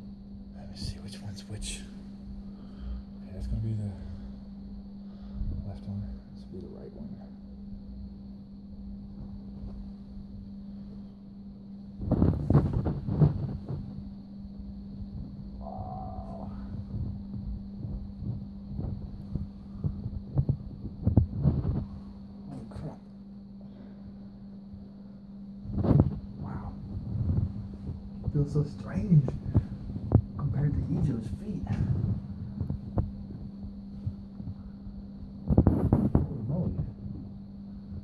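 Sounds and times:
steady low hum: 0:00.0 - 0:38.0
fursuit paw rustling and bumping: 0:12.0 - 0:14.0, 0:16.8 - 0:22.2.

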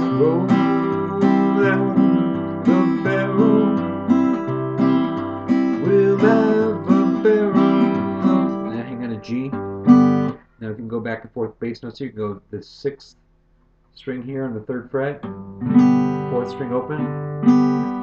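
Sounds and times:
acoustic guitar polka accompaniment: 0:00.0 - 0:11.2, 0:15.1 - 0:18.0.

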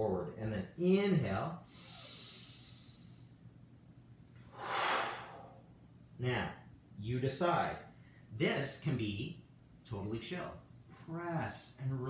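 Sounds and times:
man breathing in softly: 0:04.5 - 0:05.6
man exhaling forcefully: 0:04.5 - 0:05.6.

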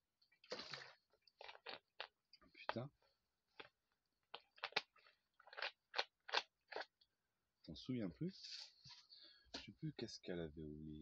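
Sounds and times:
person chewing crunchy food: 0:00.4 - 0:02.9, 0:03.5 - 0:07.0.

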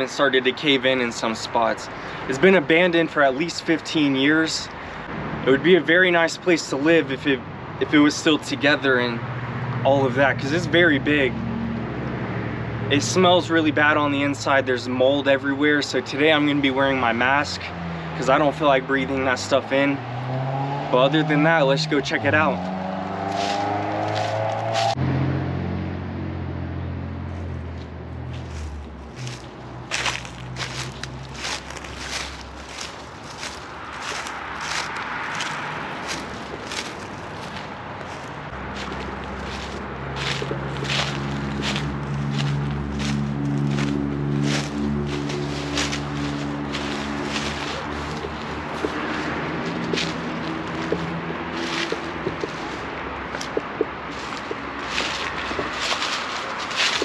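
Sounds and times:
footsteps on dry leaves: 0:22.6 - 0:25.0, 0:27.3 - 0:57.0.

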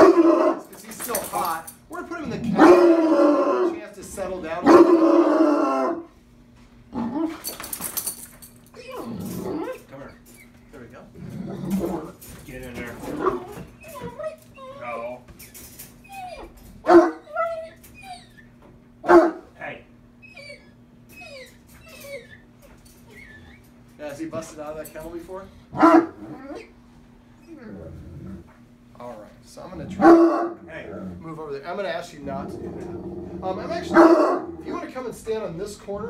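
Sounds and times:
dog barking: 0:00.0 - 0:00.7, 0:02.6 - 0:03.7, 0:04.6 - 0:06.1, 0:16.8 - 0:17.5, 0:19.0 - 0:19.5, 0:25.7 - 0:26.7, 0:29.9 - 0:30.7, 0:33.7 - 0:34.5
dog whining: 0:02.2 - 0:03.8, 0:04.6 - 0:06.2, 0:06.9 - 0:19.5, 0:20.1 - 0:24.0, 0:25.7 - 0:28.6, 0:29.7 - 0:31.4, 0:32.3 - 0:35.0.

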